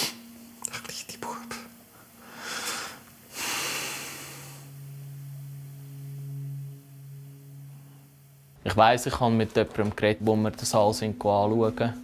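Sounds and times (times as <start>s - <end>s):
low steady tone: 0.2s - 12.0s
man breathing heavily: 2.0s - 4.7s.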